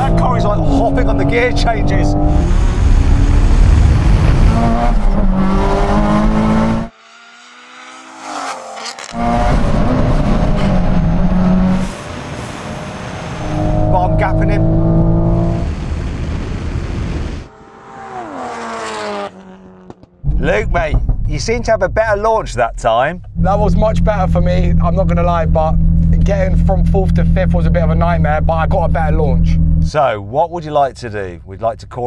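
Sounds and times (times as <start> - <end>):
racing car engines at full throttle: 0.0 - 21.1, 23.3 - 32.0.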